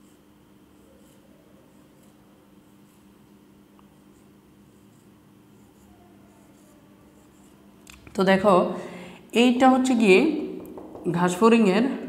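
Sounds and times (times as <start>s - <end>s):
low steady hum: 0.0s - 12.0s
marker squeaking on whiteboard: 0.7s - 2.2s, 4.1s - 7.6s.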